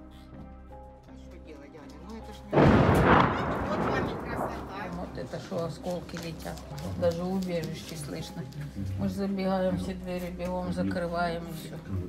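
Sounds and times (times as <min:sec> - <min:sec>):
loud artillery blast: 0:02.6 - 0:05.5.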